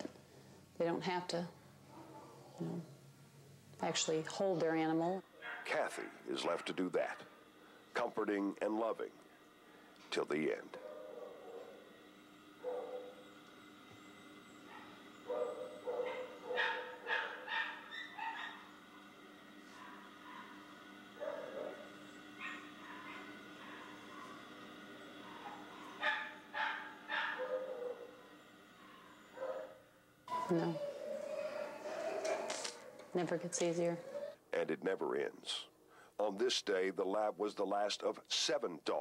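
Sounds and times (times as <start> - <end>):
faint steady hum: 0.0 - 39.0
dogs barking: 5.3 - 7.4, 10.7 - 13.4, 14.6 - 33.2, 33.8 - 34.4.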